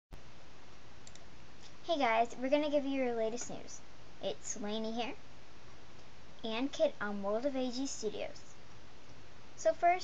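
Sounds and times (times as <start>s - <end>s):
room tone hiss: 0.2s - 10.0s
faint ticks: 1.0s - 1.8s
sharp click: 1.0s - 1.8s.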